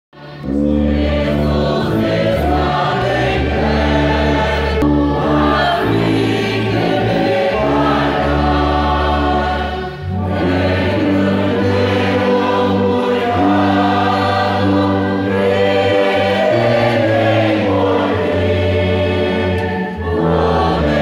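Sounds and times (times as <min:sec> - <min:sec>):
church orchestra: 0:00.2 - 0:21.0
congregation singing a hymn: 0:00.2 - 0:21.0
tuba low sustained notes: 0:00.3 - 0:21.0.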